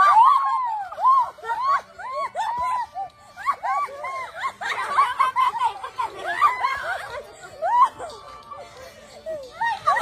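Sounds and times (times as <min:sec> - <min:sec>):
people laughing hard: 0:00.0 - 0:10.0.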